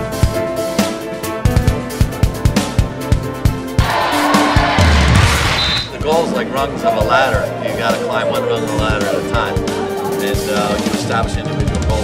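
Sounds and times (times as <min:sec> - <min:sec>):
crowd cheering and shouting: 0:03.8 - 0:06.0
short high tone: 0:04.1 - 0:05.9.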